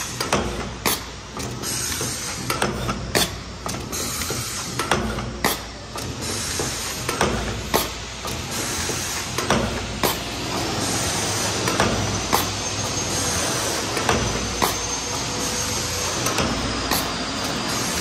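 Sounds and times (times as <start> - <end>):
machine hissing: 0.0 - 18.0
mechanical clicks and knocks: 0.1 - 10.6, 16.1 - 17.9.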